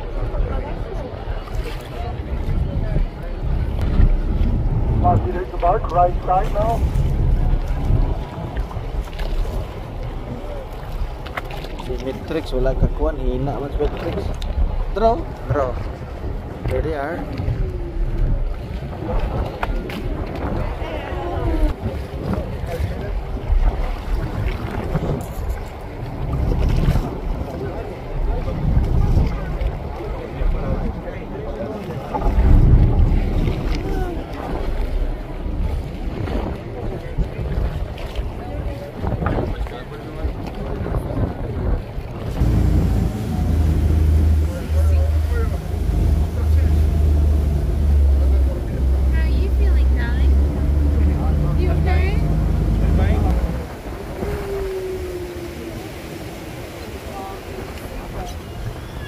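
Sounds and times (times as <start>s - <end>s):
choppy sea: 0.0s - 59.0s
wind buffeting microphone: 0.0s - 59.0s
boat engine droning: 41.9s - 59.0s.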